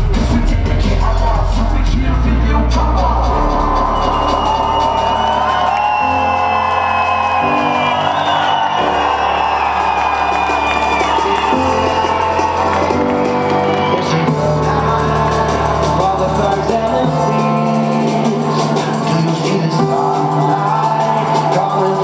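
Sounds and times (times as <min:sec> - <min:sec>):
deep bass line: 0:00.0 - 0:22.0
loud electronic music: 0:00.0 - 0:22.0
crowd whooping and cheering: 0:02.8 - 0:22.0.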